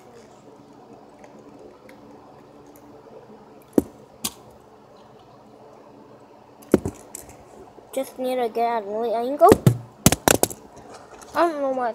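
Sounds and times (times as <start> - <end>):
faint steady hum: 0.0 - 11.9.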